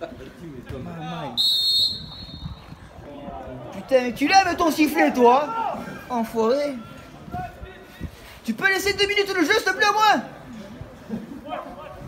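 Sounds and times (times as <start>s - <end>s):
men talking: 0.0s - 1.4s, 2.9s - 12.0s
referee's whistle blast: 1.4s - 2.6s.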